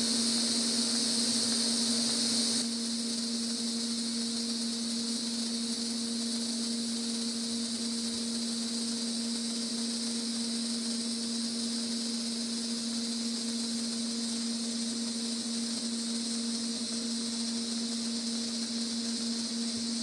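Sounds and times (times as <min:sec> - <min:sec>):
welding arc hissing: 0:00.0 - 0:20.0.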